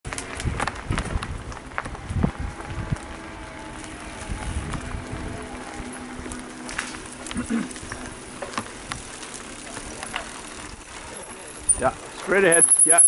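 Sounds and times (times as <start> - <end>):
bike rattling over dirt trail: 0.1 - 13.0.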